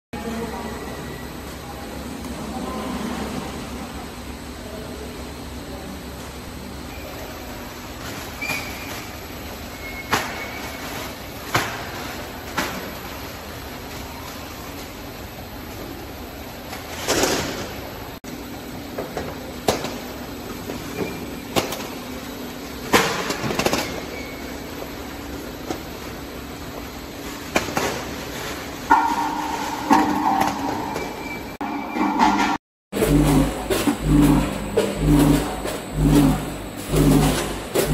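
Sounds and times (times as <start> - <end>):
steady machine hum: 10.8 - 37.9.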